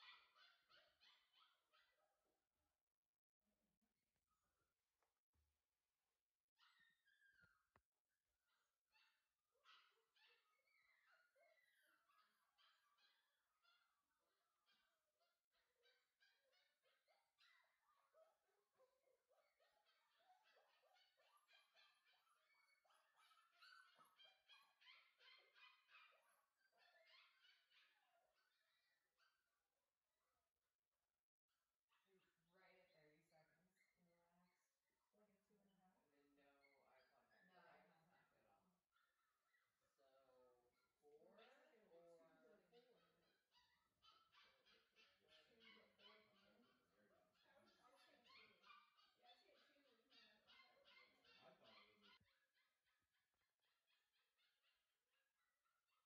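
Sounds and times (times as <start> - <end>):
puppy whimpering: 6.6 - 7.8, 15.6 - 29.4, 43.0 - 52.7.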